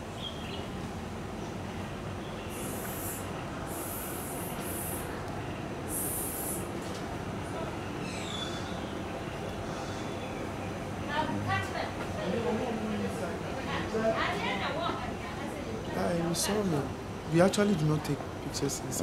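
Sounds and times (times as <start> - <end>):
high hissing bursts: 2.5 - 5.2, 5.9 - 6.7.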